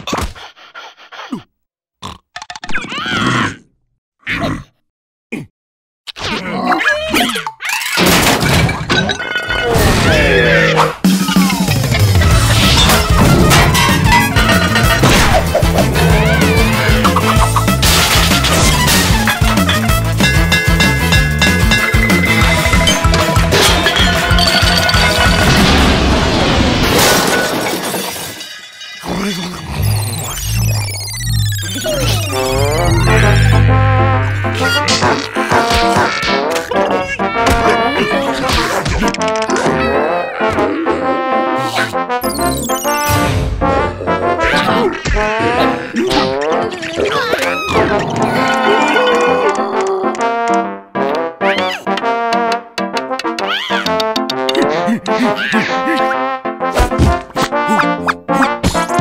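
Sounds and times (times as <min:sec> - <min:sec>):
cartoon character grunts and squeals: 0:02.7 - 0:04.7, 0:06.2 - 0:08.0, 0:15.9 - 0:17.5, 0:31.6 - 0:38.9, 0:39.6 - 0:42.0, 0:44.4 - 0:50.4, 0:54.6 - 0:56.2
cartoon glass shattering crash: 0:07.9 - 0:10.4, 0:17.7 - 0:19.4, 0:20.2 - 0:29.2
glassy tinkling: 0:20.2 - 0:23.2
falling cry: 0:31.8 - 0:38.4, 0:44.6 - 0:50.2.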